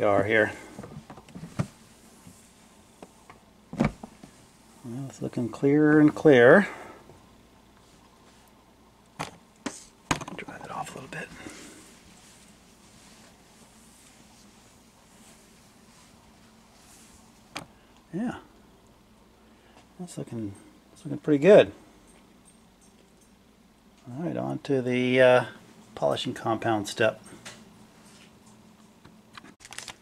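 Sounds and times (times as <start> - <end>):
low steady hum: 0.0 - 30.0
cloth rubbing plastic cover: 11.5 - 17.4.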